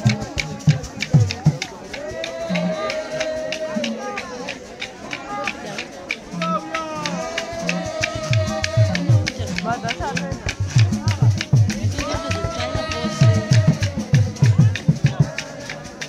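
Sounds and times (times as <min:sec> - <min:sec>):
low drum beat: 0:00.0 - 0:04.2, 0:06.4 - 0:16.0
group singing: 0:00.0 - 0:16.0
shaken rattles: 0:00.0 - 0:16.0.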